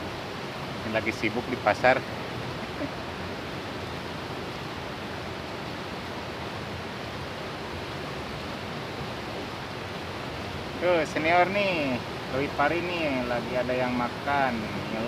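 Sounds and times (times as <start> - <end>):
river rushing over rocks: 0.0 - 15.0.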